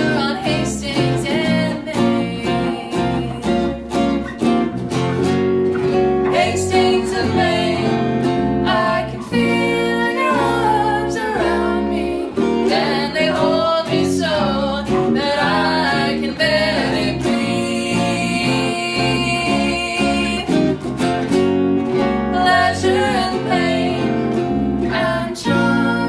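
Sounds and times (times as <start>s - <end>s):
woman singing: 0.0s - 3.9s, 6.3s - 20.8s, 22.3s - 26.0s
electric bass: 0.0s - 26.0s
electric guitar: 0.0s - 26.0s.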